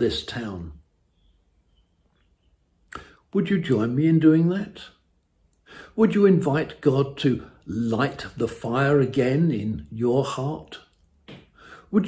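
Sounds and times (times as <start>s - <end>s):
faint bird chirps: 0.8s - 3.2s
short breath: 3.0s - 3.3s, 5.6s - 6.0s, 11.5s - 11.9s.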